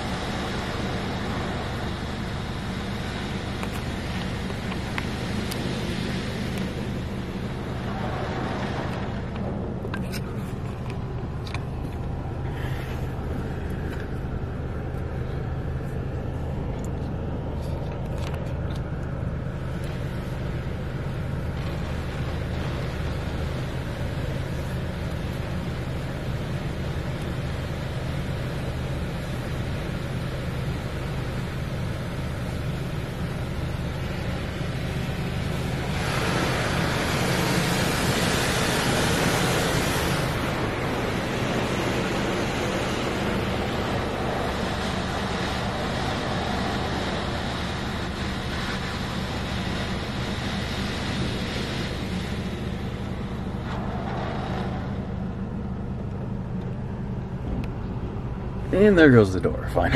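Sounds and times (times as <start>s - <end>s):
car wash spraying water: 0.0s - 59.9s
steady low hum: 0.0s - 59.9s.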